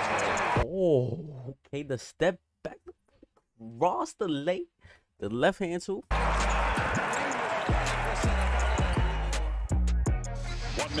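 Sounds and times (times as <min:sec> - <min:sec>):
arena crowd noise: 0:00.0 - 0:00.6, 0:06.1 - 0:09.9
music with heavy bass line: 0:07.7 - 0:11.0.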